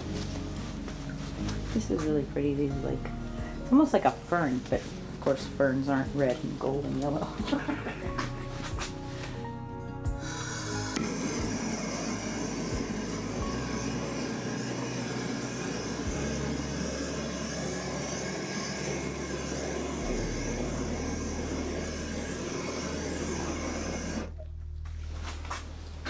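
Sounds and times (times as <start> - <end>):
gas torch hissing: 1.4 - 24.4.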